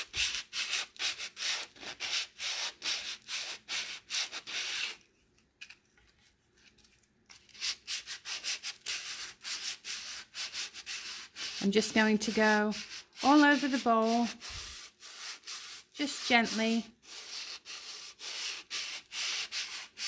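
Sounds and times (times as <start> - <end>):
sandpaper rasping on wood: 0.0 - 5.0, 7.5 - 20.0.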